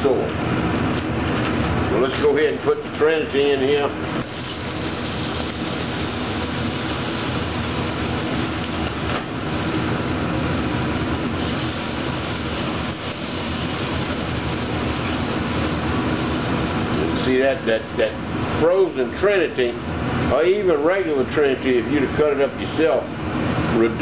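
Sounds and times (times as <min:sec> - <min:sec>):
vegetables sizzling in roux: 0:04.2 - 0:17.0
stirring in a pot: 0:11.0 - 0:17.0.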